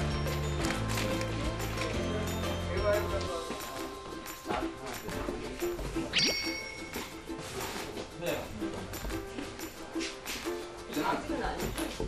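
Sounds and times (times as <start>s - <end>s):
soft background music: 0.0s - 12.0s
bright ding: 6.1s - 7.2s.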